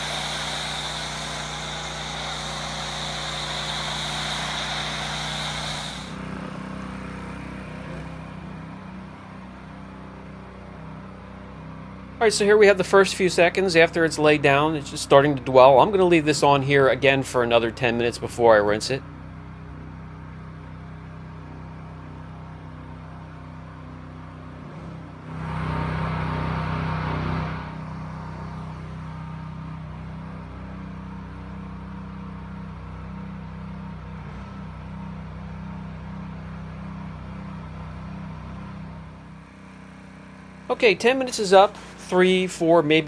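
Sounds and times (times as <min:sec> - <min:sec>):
pressure washer engine running: 0:00.0 - 0:10.0, 0:25.4 - 0:33.2, 0:34.3 - 0:43.0.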